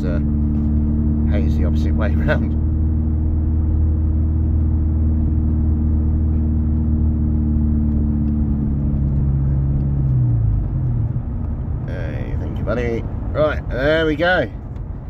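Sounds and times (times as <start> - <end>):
car engine droning from inside: 0.0 - 15.0.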